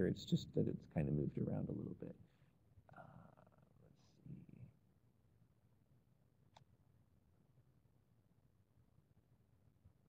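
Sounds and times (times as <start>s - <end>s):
faint low noises: 0.0s - 10.0s.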